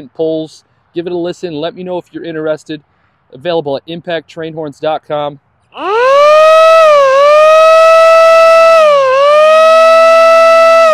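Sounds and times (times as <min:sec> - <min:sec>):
siren horn wailing: 0:05.8 - 0:10.9.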